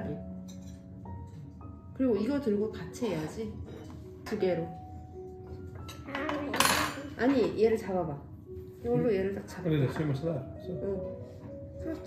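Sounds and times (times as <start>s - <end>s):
soft background music: 0.0s - 12.0s
cutlery scraping on a plate: 5.8s - 7.6s.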